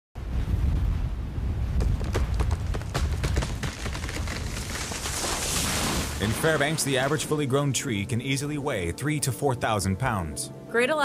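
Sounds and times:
wood cracking and snapping: 0:01.9 - 0:07.2.

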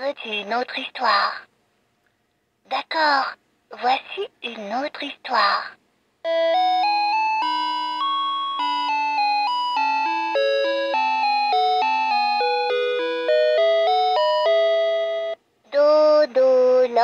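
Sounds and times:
toy playing electronic lullaby: 0:06.2 - 0:15.4.

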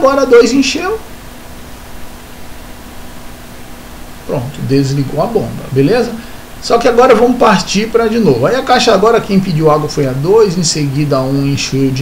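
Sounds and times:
faint steady hum: 0:00.0 - 0:12.0
steady background hiss: 0:00.0 - 0:12.0.

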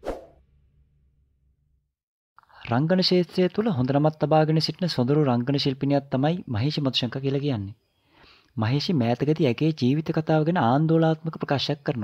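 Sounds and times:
swoosh sound effect: 0:00.0 - 0:00.5.

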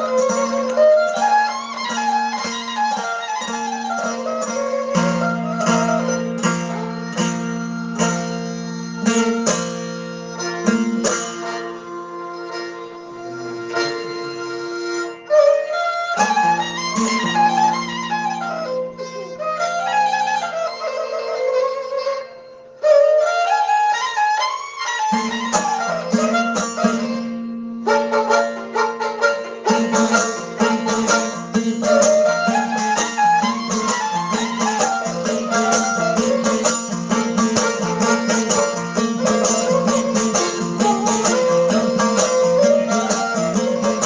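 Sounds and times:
bowed fiddle melody: 0:00.0 - 0:44.0
plucked string strokes: 0:00.0 - 0:44.0.

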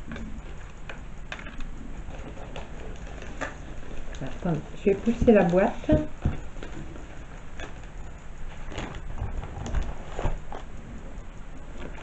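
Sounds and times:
paper and cardboard rustling: 0:08.5 - 0:10.7.

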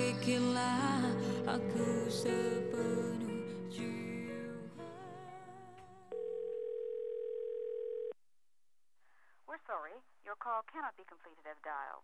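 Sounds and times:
telephone beep: 0:06.2 - 0:08.2
voice over phone line: 0:09.6 - 0:12.0.

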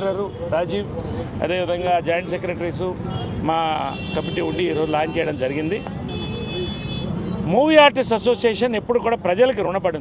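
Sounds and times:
man speaking: 0:00.0 - 0:05.9, 0:07.4 - 0:10.0.

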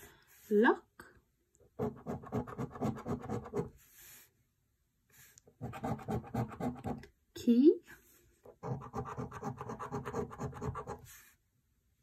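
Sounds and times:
coin scratching scratch card: 0:01.8 - 0:03.7, 0:05.6 - 0:07.0, 0:08.6 - 0:11.1.

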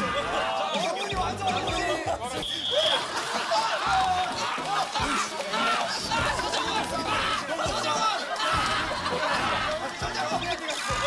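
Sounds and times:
music: 0:00.0 - 0:11.0
voices shouting and laughing: 0:00.0 - 0:11.0.

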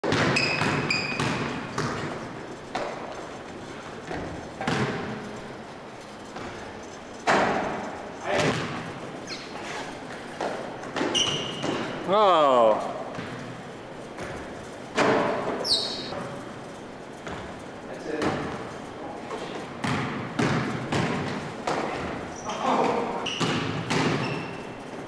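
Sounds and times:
players' footfalls: 0:00.0 - 0:12.1, 0:12.8 - 0:25.0
sneaker squeaks: 0:00.0 - 0:12.1, 0:13.1 - 0:25.0
basketball thudding on wooden floor: 0:00.1 - 0:02.1, 0:04.1 - 0:05.1, 0:08.4 - 0:08.8, 0:19.8 - 0:22.2.

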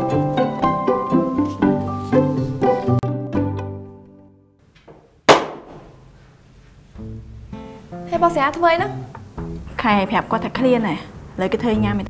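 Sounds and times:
plucked-string music: 0:00.0 - 0:04.5, 0:07.0 - 0:10.5
sharp percussive hit: 0:05.3 - 0:06.0.

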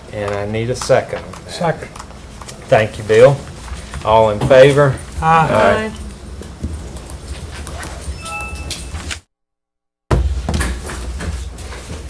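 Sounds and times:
people shuffling: 0:00.0 - 0:08.2
faint tone: 0:08.2 - 0:09.2.

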